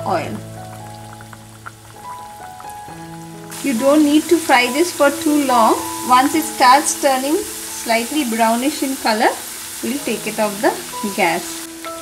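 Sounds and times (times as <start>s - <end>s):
fritters deep-frying in oil: 0.0s - 12.0s
soft background music: 0.0s - 12.0s.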